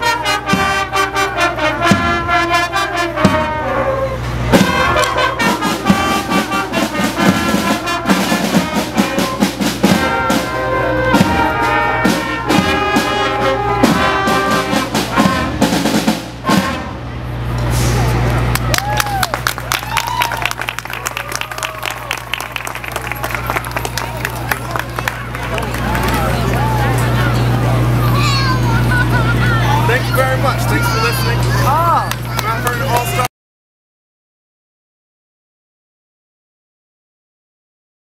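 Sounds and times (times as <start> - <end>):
steady drum beat: 0.0 - 1.1, 1.7 - 2.5, 4.5 - 17.0
brass and flutes: 0.0 - 18.3.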